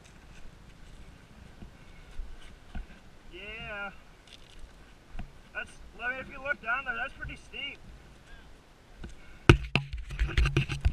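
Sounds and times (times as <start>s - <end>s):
sharp knocks on camera: 9.5s - 10.9s.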